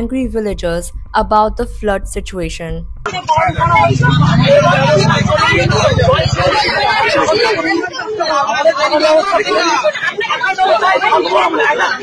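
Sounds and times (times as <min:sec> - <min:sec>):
woman speaking: 0:00.0 - 0:02.9
steady low rumble: 0:00.0 - 0:06.6
crowd talking over one another: 0:03.0 - 0:12.0.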